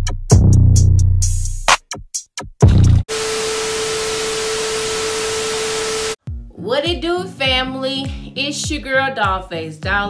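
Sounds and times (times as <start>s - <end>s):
white noise hiss: 3.1s - 6.2s.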